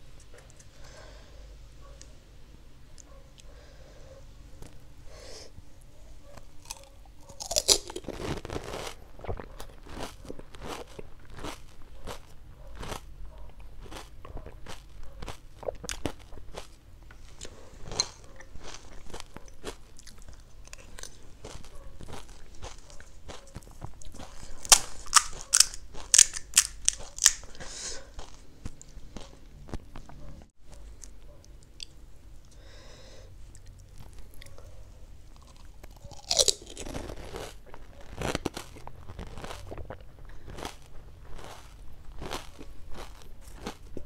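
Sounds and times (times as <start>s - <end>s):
crunch of biting crisp shell: 6.3s - 30.1s, 35.3s - 44.0s
wet chewing clicks: 6.3s - 32.0s
crisp cracks: 6.6s - 13.1s, 17.4s - 27.7s, 35.4s - 44.0s.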